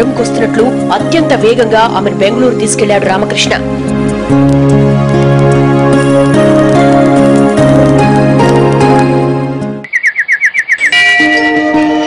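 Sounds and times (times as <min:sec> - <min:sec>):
background music: 0:00.0 - 0:12.0
bird chirping: 0:09.8 - 0:11.4.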